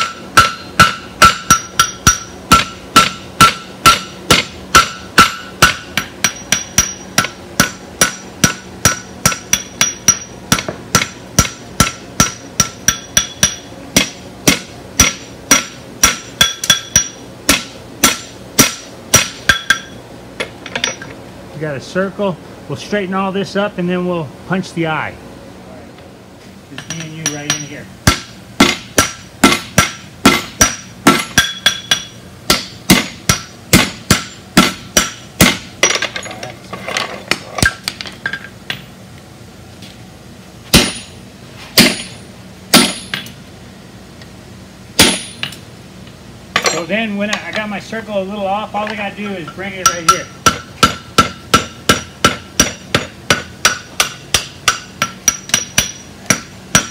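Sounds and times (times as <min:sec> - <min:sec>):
hammer striking steel on anvil: 0:00.0 - 0:20.0, 0:26.8 - 0:36.4, 0:40.7 - 0:41.2, 0:41.8 - 0:43.4, 0:45.0 - 0:45.6, 0:48.8 - 0:56.9.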